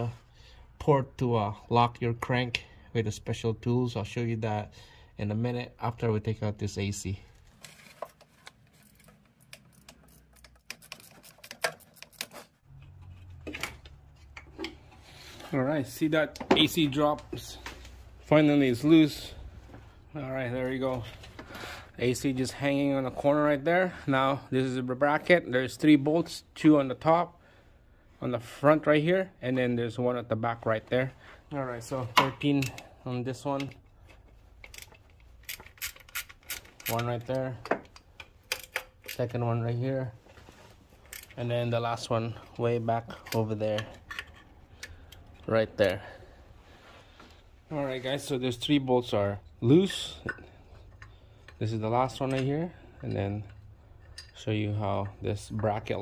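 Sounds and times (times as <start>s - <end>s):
metallic clicks and knocks of tools: 8.4s - 14.8s, 34.6s - 39.4s, 52.2s - 54.4s.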